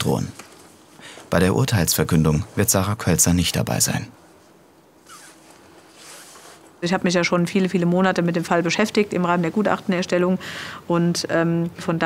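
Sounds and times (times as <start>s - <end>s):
bag zipper: 5.0s - 6.7s.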